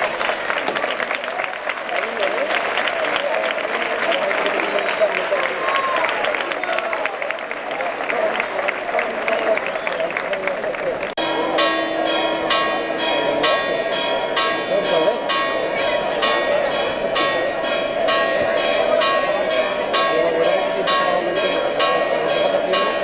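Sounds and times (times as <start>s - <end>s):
crowd clapping: 0.0s - 23.0s
crowd voices: 0.0s - 23.0s
church bells pealing: 11.2s - 23.0s.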